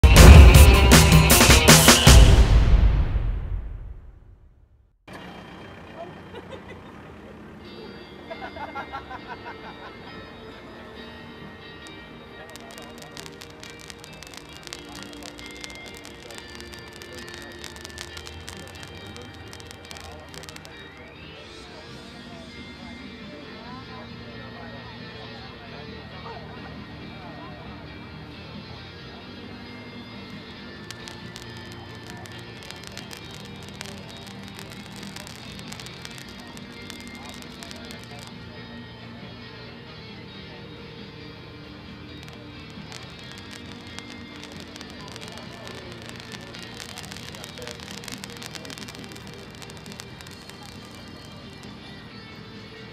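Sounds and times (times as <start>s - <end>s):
background music: 0.0s - 3.5s, 7.6s - 52.9s
firework fountain hissing: 0.0s - 3.5s, 11.8s - 23.0s, 30.2s - 38.6s, 41.7s - 52.9s
people talking: 5.1s - 11.2s, 11.8s - 40.8s, 42.2s - 52.9s
person laughing: 6.1s - 7.0s.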